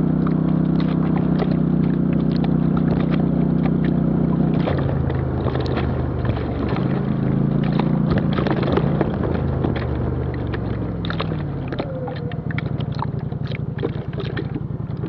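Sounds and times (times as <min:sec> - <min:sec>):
off-road vehicle engine running: 0:00.0 - 0:15.0.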